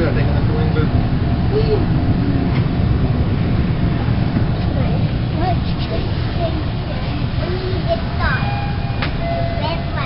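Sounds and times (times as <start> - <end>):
subway car rumble: 0.0 - 10.0.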